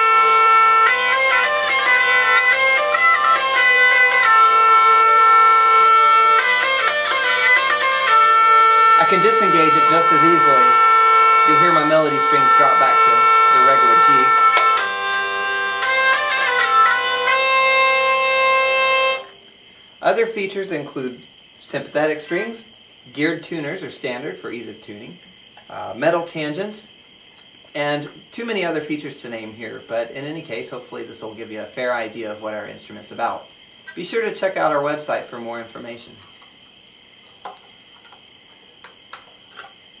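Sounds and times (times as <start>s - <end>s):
hurdy-gurdy drone strings: 0.0s - 19.4s
hurdy-gurdy melody strings: 0.0s - 19.4s
faint high whine: 0.0s - 40.0s.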